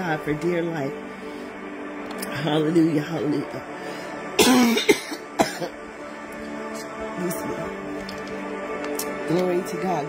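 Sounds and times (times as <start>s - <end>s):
soft background music: 0.0s - 10.0s
person coughing: 4.4s - 5.8s.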